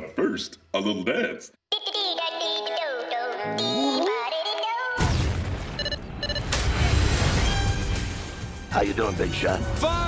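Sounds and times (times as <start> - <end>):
short electronic beeps: 5.8 - 6.6.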